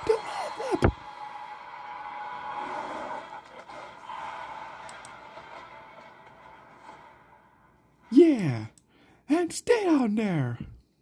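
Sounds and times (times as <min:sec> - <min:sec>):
film score and effects: 0:00.0 - 0:08.1.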